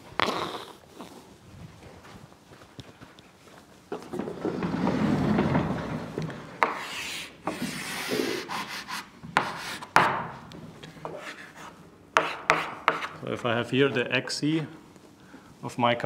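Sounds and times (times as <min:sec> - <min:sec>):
sliding blackboard rumbling: 0:03.9 - 0:08.6
chalk tapping and scratching: 0:06.6 - 0:10.2, 0:11.0 - 0:13.2.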